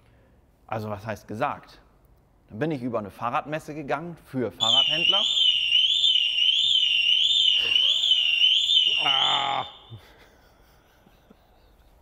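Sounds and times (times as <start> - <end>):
electronic alarm warbling: 4.6 - 10.0.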